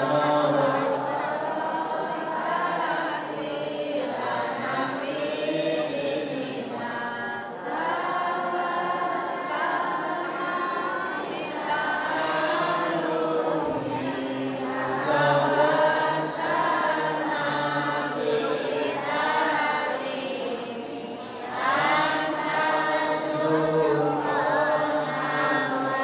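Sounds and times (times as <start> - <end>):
group of voices chanting: 0.0 - 26.0.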